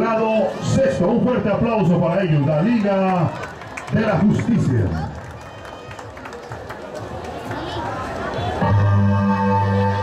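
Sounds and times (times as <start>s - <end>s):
crowd talking and murmuring: 0.0s - 10.0s.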